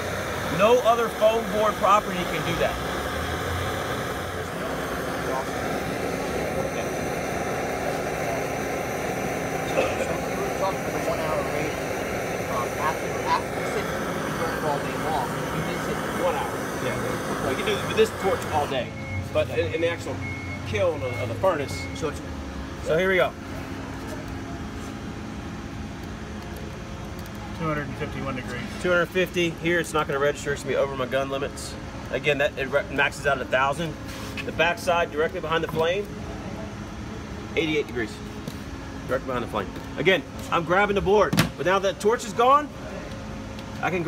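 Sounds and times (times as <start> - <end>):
blowtorch flame hissing: 0.0 - 20.1, 26.0 - 43.2
steady low hum: 0.0 - 31.9.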